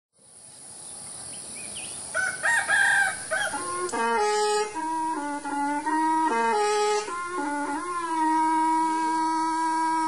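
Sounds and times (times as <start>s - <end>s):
steady high hiss: 0.2s - 10.0s
rooster crowing: 2.1s - 3.8s
flute-like melody: 3.3s - 10.0s.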